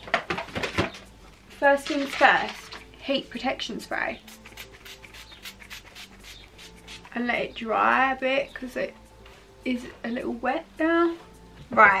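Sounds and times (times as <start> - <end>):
spray bottle short sprays: 4.3 - 7.1.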